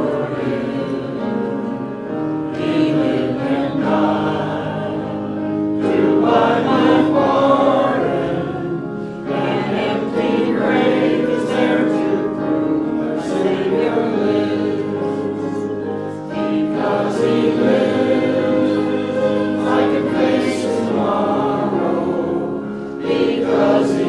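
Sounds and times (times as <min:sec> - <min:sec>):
choir singing a hymn: 0:00.0 - 0:24.0.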